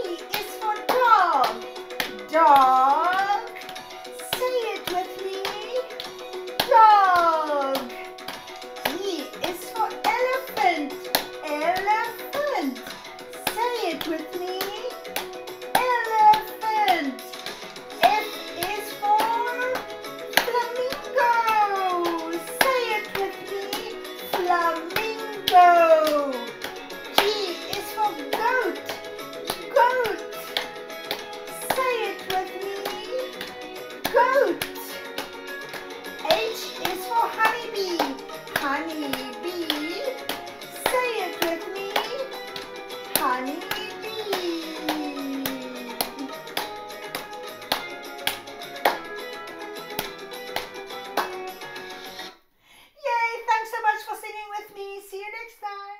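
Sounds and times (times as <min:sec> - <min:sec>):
hands clapping: 0:00.0 - 0:52.3
backing music: 0:00.0 - 0:52.4
woman singing: 0:18.0 - 0:30.6, 0:31.6 - 0:35.1, 0:36.2 - 0:42.4, 0:43.1 - 0:46.5.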